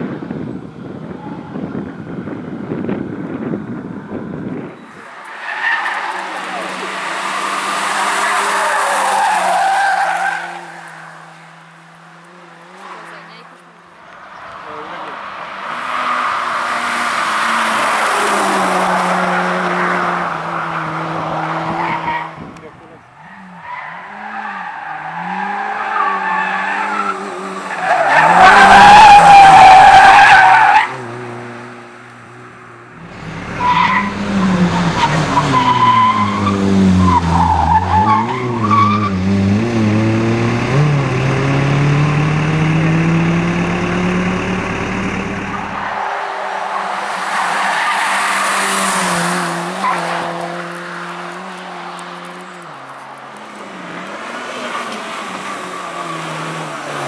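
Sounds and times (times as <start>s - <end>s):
rally car engine revving: 0.0s - 57.0s
tyres squealing: 4.8s - 11.3s, 23.2s - 31.0s, 33.0s - 39.3s.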